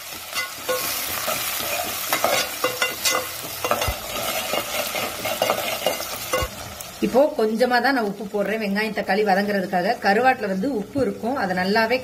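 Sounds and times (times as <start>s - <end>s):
vegetables sizzling in hot oil: 0.0s - 12.0s
metal ladle scraping pot: 0.3s - 6.6s.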